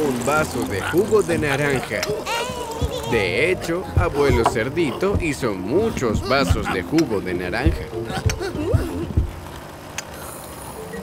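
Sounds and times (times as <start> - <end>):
juice machine whirring: 0.0 - 10.6.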